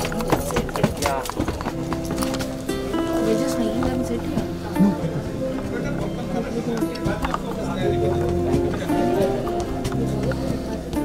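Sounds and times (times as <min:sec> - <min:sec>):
sharp clicks and knocks: 0:00.0 - 0:02.8
music: 0:00.0 - 0:11.0
overlapping crowd voices: 0:00.0 - 0:11.0.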